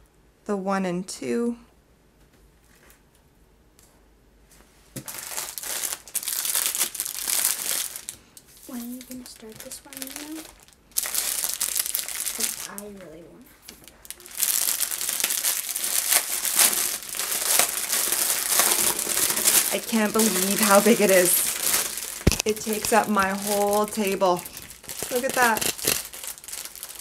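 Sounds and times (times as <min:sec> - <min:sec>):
plastic packaging crinkling: 0:05.0 - 0:27.0.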